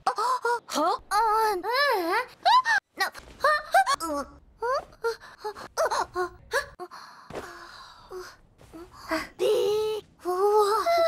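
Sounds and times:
girl making wordless vocal noises: 0.0s - 6.9s, 8.1s - 11.0s.

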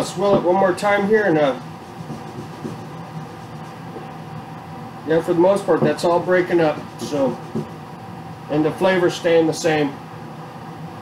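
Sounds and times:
room tone hum: 0.0s - 11.0s.

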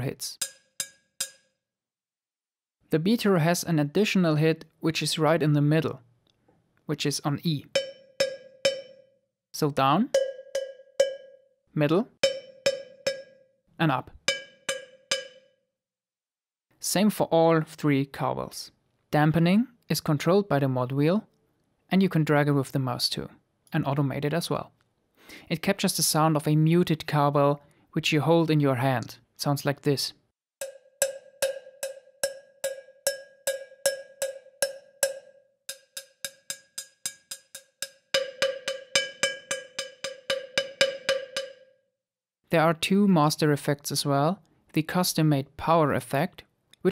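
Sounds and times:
cowbell struck with beater: 0.4s - 1.6s, 7.7s - 9.2s, 10.0s - 11.6s, 12.2s - 13.6s, 14.2s - 15.6s, 30.6s - 41.8s.

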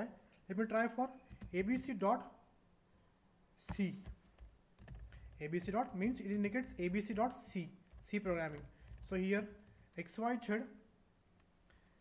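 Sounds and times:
person speaking a letter: 0.0s - 2.3s, 3.6s - 4.2s, 5.4s - 10.8s
computer keyboard keystrokes: 1.3s - 1.9s, 3.7s - 9.9s.

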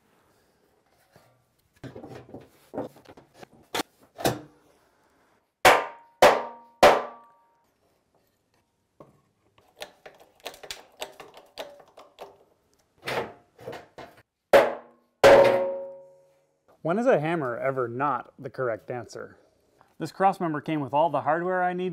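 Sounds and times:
mallet striking steel: 14.6s - 16.2s.

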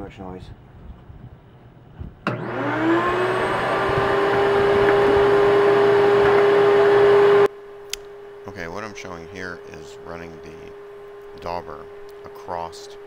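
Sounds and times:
vacuum motor whining: 2.2s - 7.5s.

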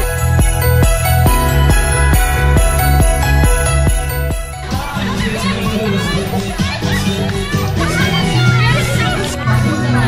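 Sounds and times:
music with bass line: 0.0s - 10.0s
children and adults shouting: 4.6s - 10.0s.

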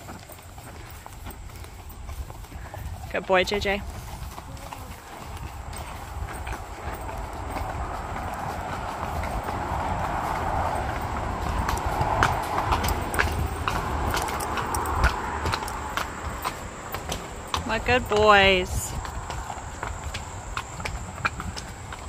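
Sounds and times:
highway traffic rushing: 0.0s - 22.0s
horse hooves clip-clopping on bridge: 0.0s - 22.0s.

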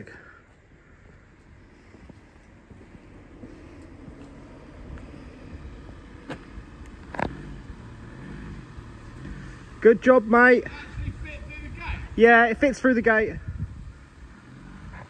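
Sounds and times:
van engine running: 0.0s - 12.2s, 13.4s - 15.0s.

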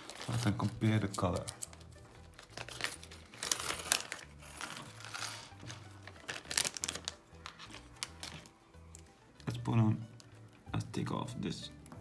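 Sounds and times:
plastic bag crinkling: 0.0s - 9.6s
soft background music: 0.0s - 12.0s.

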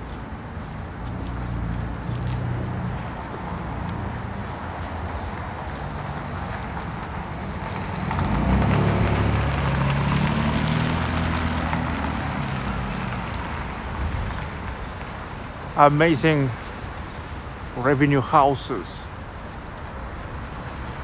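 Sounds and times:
street traffic hum: 0.0s - 21.0s
car driving past: 7.1s - 14.4s.

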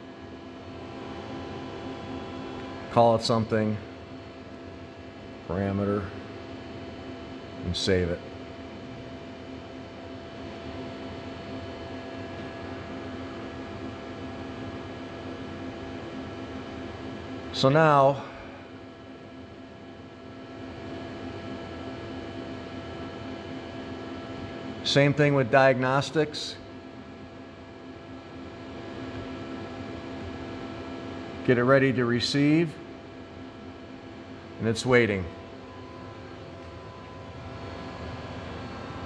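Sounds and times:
constant electrical tones: 0.0s - 39.0s
electrical hum and fan hiss: 0.0s - 39.0s.

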